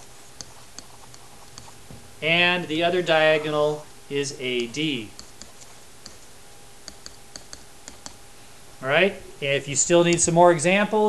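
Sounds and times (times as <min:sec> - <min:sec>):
stylus tapping on tablet screen: 0:05.1 - 0:08.2.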